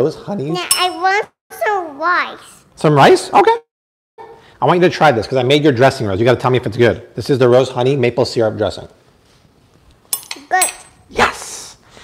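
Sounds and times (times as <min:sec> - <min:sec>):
metal spoon clinking: 0:00.7 - 0:01.1, 0:10.1 - 0:11.0.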